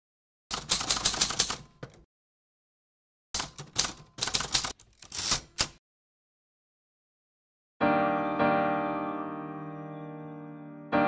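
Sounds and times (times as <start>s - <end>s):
typewriter keys clacking: 0.5s - 2.0s, 3.4s - 5.8s.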